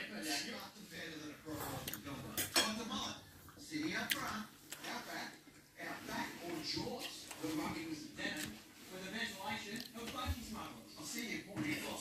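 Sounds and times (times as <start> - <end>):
cutlery clinking against a plate: 1.9 - 3.1.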